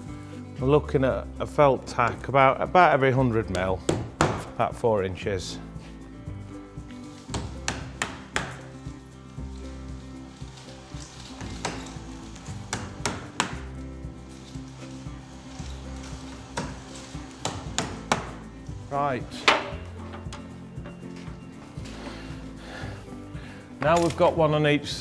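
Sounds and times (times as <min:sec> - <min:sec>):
background music: 0:00.0 - 0:25.0
hammer tapping tacks: 0:07.3 - 0:08.7, 0:12.7 - 0:13.7, 0:16.5 - 0:18.5.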